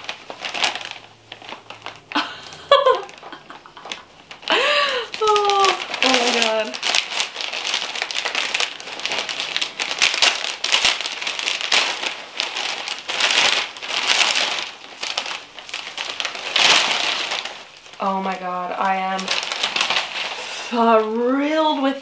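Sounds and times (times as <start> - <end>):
packing peanuts rattling: 0.0 - 21.0
plastic sleeve crinkling: 0.0 - 22.0.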